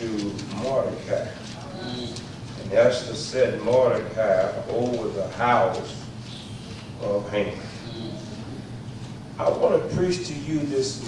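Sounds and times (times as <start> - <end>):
man talking into microphone: 0.0 - 6.1, 7.0 - 8.4, 9.4 - 11.0.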